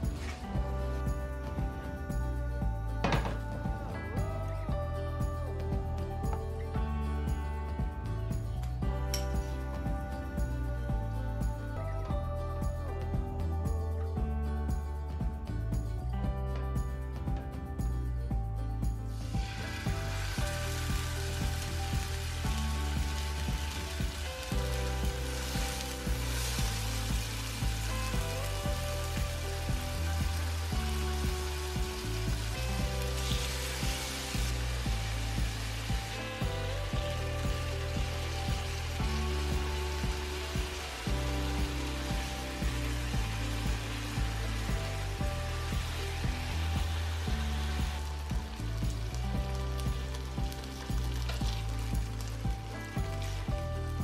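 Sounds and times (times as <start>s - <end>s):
background music with beat: 0.0s - 54.0s
chicken sizzling in hot oil: 19.1s - 54.0s.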